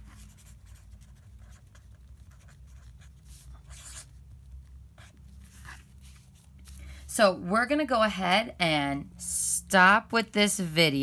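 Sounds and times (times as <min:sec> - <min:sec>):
marker scratching on paper: 0:00.0 - 0:06.5.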